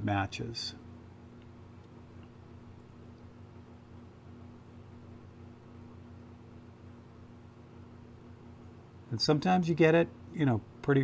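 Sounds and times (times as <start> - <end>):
faint low hum with hiss: 0.0 - 11.0.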